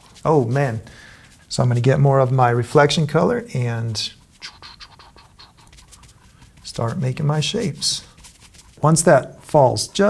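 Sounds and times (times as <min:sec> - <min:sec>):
paintbrush scratching through paint: 0:00.0 - 0:10.0.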